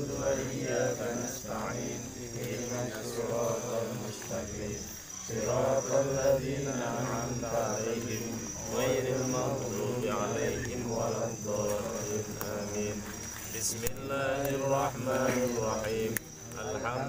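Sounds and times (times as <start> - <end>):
night insects trilling: 0.0 - 17.0
man murmuring prayer: 11.7 - 17.0.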